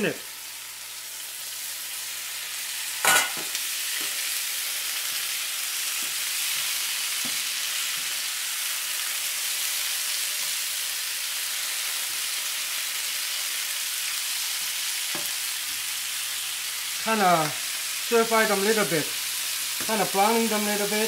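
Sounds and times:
food sizzling in oil: 0:00.0 - 0:21.0
food hitting hot pan: 0:03.0 - 0:04.2.

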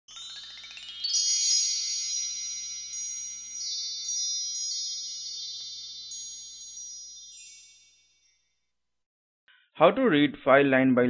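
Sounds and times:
high bell-like chimes: 0:00.0 - 0:08.7.

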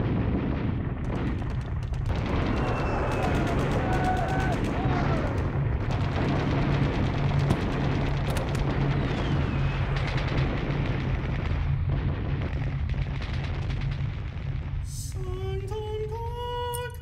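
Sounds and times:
explosions: 0:00.0 - 0:16.2
rapid gunfire crackle: 0:00.0 - 0:17.0
steady low rumble: 0:00.0 - 0:17.0
falling whistle: 0:02.5 - 0:04.5.

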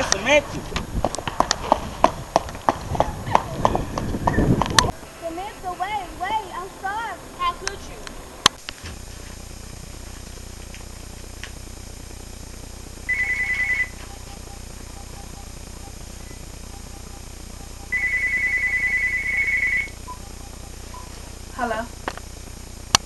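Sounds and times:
steady low hum: 0:00.0 - 0:23.0
phone ringing trilling tone: 0:13.0 - 0:21.8.

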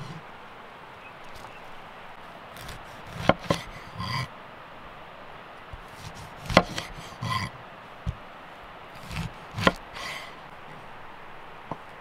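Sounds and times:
knife cutting orange peel: 0:02.6 - 0:04.0, 0:05.8 - 0:07.2, 0:09.0 - 0:10.2.

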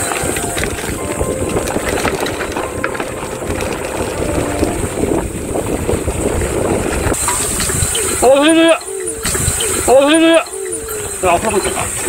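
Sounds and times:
bike tyres rolling over dirt: 0:00.0 - 0:08.0
bike rattling: 0:00.0 - 0:10.0.

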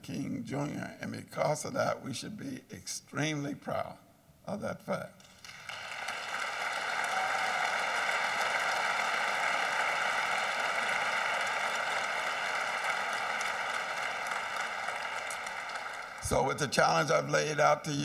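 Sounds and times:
audience applauding: 0:05.3 - 0:17.1.

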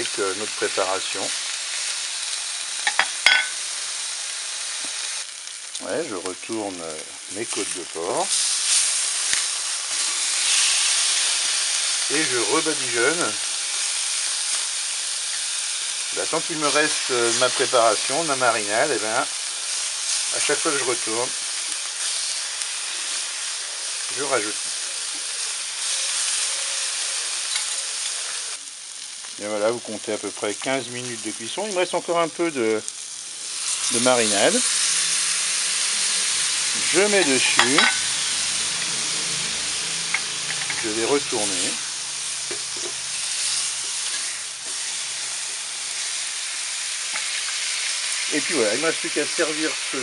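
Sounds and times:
marinade hissing into steam: 0:00.0 - 0:50.0
meat sizzling on a griddle: 0:00.0 - 0:50.0.

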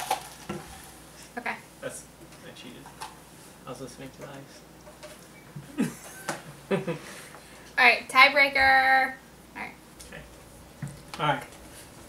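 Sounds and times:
ice rattling: 0:00.0 - 0:00.5.

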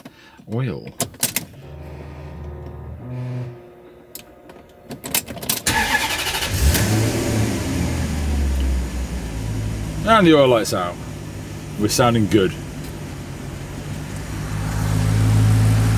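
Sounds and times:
car engine starting and idling: 0:01.4 - 0:15.9
ignition clicks: 0:04.1 - 0:07.4.

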